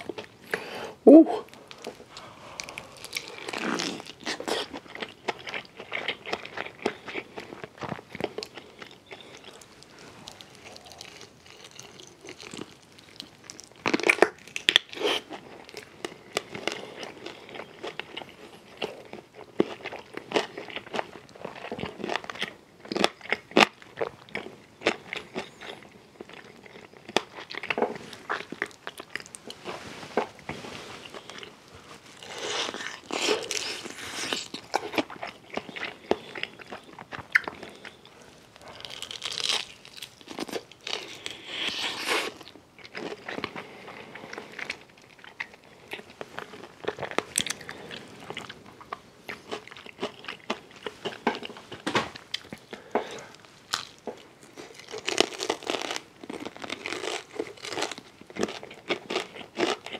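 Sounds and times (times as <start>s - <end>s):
crunching fried chicken: 1.6s - 59.9s.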